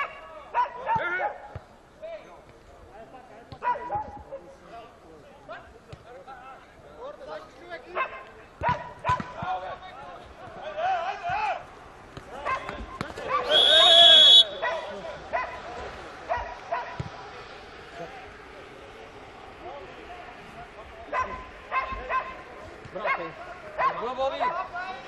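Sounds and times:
players shouting: 0:08.0 - 0:19.5
referee's whistle blast: 0:13.4 - 0:14.7.

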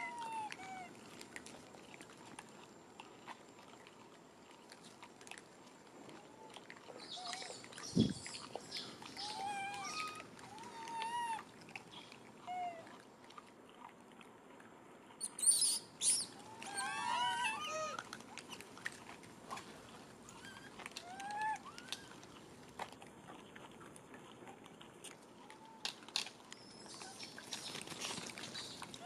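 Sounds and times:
monkey high shrieks: 0:09.2 - 0:11.4, 0:15.2 - 0:18.0
monkeys squeaky calls: 0:09.2 - 0:11.4, 0:15.2 - 0:18.0.

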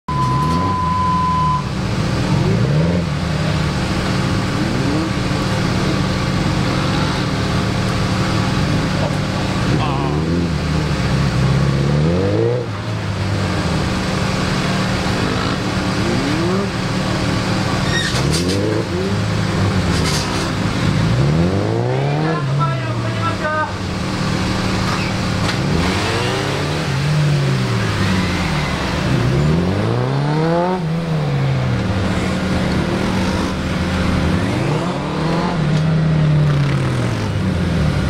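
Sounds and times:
steady high beep: 0:00.1 - 0:01.7
motorcycle engine revving: 0:02.2 - 0:38.0.

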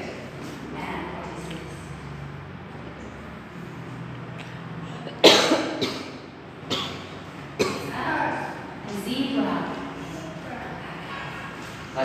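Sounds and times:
person coughing: 0:05.0 - 0:08.1.

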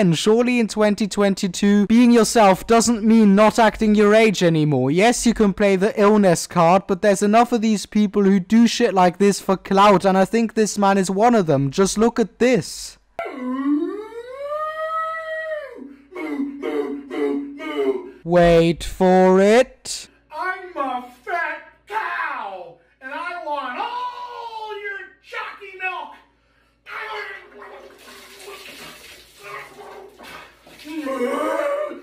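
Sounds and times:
man's high-pitched wail: 0:13.2 - 0:18.2, 0:23.8 - 0:24.8, 0:30.8 - 0:32.0
liquid pouring and splashing: 0:27.4 - 0:31.3.

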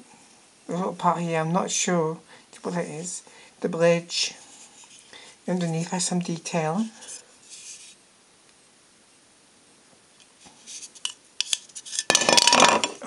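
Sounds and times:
metal model clattering on table: 0:11.4 - 0:13.0.

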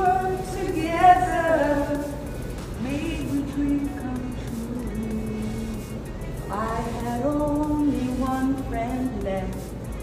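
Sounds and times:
low background hum: 0:00.0 - 0:10.0
woman singing slow ballad: 0:02.8 - 0:09.6.

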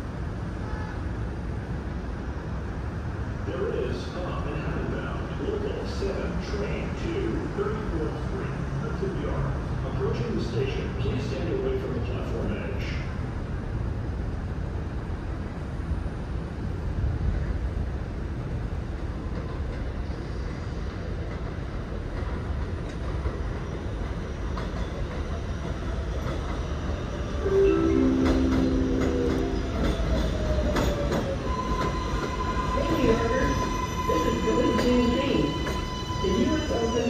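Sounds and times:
train wheels rumbling on track: 0:00.0 - 0:37.0
chord of steady tones: 0:27.4 - 0:30.4.

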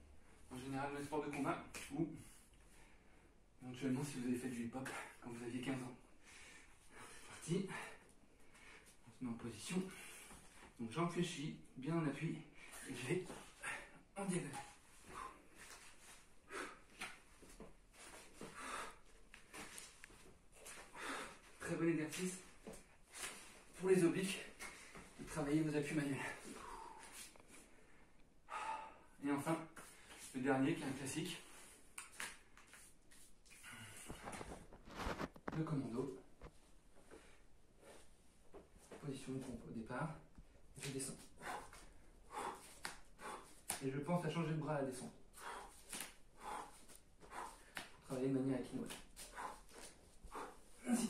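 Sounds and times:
man breathing: 0:06.1 - 0:09.0, 0:12.5 - 0:21.7, 0:26.2 - 0:29.2, 0:33.5 - 0:34.7, 0:41.2 - 0:43.8, 0:45.3 - 0:48.0, 0:49.2 - 0:51.0.

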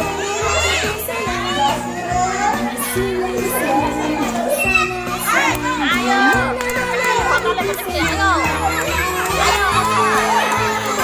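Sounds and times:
children shouting and cheering: 0:00.0 - 0:11.0
music playing: 0:00.0 - 0:11.0.

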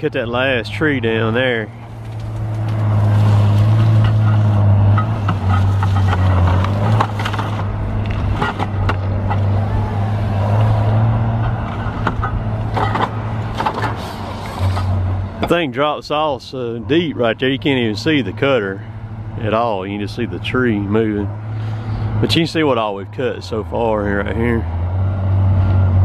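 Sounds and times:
diesel engine running: 0:00.0 - 0:26.0
short knocks and clanks: 0:11.4 - 0:15.6.

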